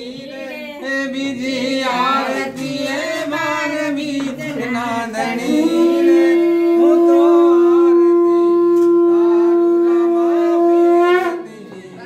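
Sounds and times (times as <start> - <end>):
conch shell blown: 5.6 - 11.7.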